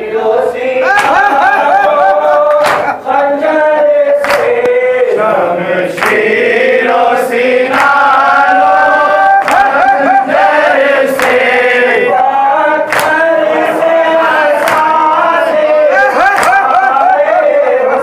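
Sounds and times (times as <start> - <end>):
lead reciter on a microphone: 0.0 - 18.0
men chanting a lament in unison: 0.0 - 18.0.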